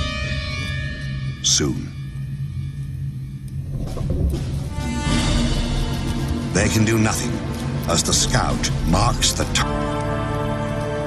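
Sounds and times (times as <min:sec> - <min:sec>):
low rumbling drone: 0:00.0 - 0:11.0.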